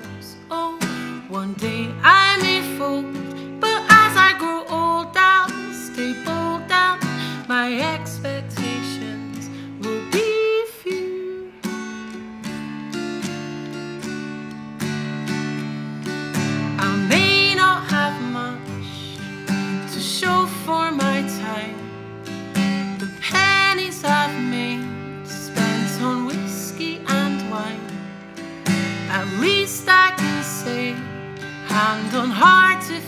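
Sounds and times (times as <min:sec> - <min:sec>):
woman singing: 0:00.0 - 0:12.0, 0:16.4 - 0:28.2, 0:28.8 - 0:33.0
acoustic guitar: 0:00.0 - 0:33.0.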